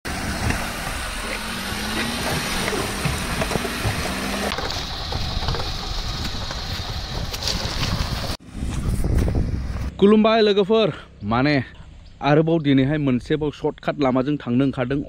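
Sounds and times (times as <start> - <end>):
car engine running: 0.0 - 8.4
water rushing and splashing: 0.0 - 8.4.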